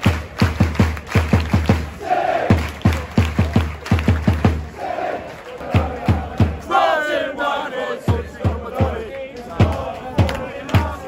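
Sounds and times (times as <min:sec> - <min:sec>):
crowd clapping in unison: 0:00.0 - 0:07.3, 0:08.1 - 0:11.0.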